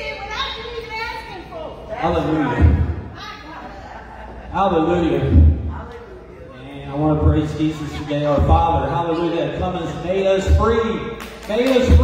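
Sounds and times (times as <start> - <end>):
man talking: 4.5 - 5.6, 6.6 - 12.0.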